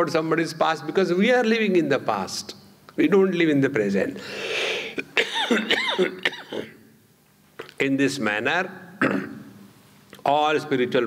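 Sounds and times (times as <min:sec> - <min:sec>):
man coughing: 0:04.8 - 0:06.8, 0:09.0 - 0:09.4.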